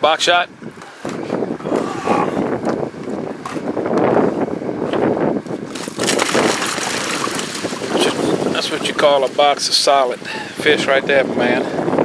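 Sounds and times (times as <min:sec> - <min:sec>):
wind on microphone: 0:00.5 - 0:12.0
fish spilling onto wooden deck: 0:05.7 - 0:08.3.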